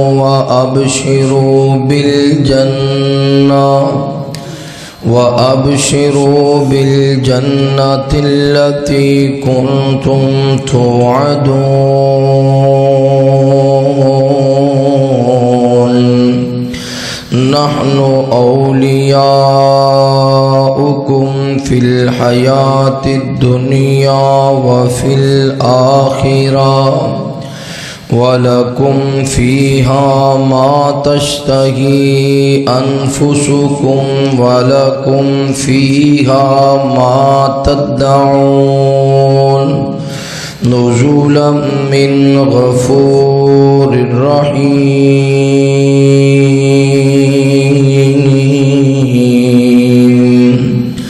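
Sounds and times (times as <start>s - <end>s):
man reciting melodically through microphone: 0.0s - 51.0s.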